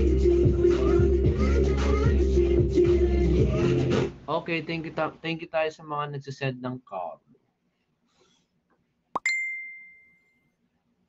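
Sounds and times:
bell-like ding: 0:09.2 - 0:10.5.

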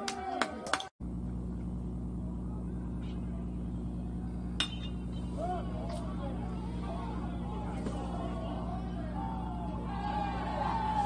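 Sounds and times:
steady low hum: 0:01.0 - 0:11.0
voices calling out: 0:02.5 - 0:11.0
metal bat hitting ball: 0:04.6 - 0:05.2.

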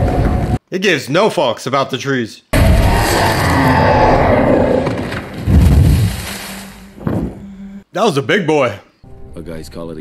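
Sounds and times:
wood splintering and branches breaking: 0:04.6 - 0:07.4.

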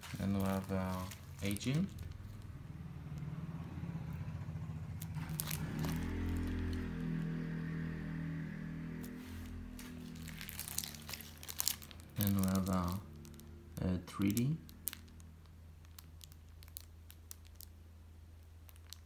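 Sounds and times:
plastic file crinkling: 0:00.0 - 0:02.5, 0:05.0 - 0:07.2, 0:09.0 - 0:17.8, 0:18.4 - 0:19.0.

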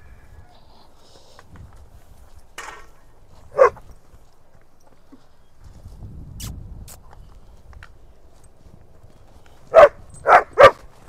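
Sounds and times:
horse hooves on dirt: 0:00.0 - 0:11.0
dog barking sharply: 0:03.5 - 0:03.8, 0:09.7 - 0:10.8.

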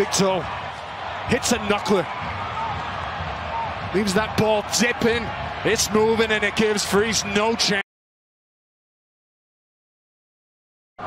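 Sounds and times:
stadium crowd noise: 0:00.0 - 0:07.8.

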